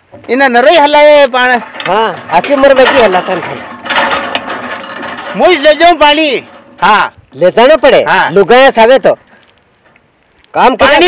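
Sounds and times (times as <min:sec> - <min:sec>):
metal hand pump clanking: 0:00.0 - 0:11.0.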